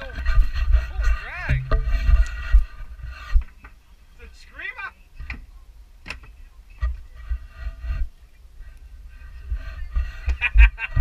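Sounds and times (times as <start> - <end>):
heavy low rumble: 0.4 - 2.7.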